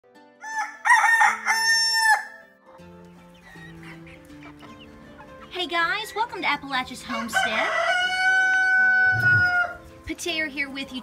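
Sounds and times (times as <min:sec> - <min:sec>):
rooster crowing: 0:00.4 - 0:02.4, 0:07.1 - 0:09.8.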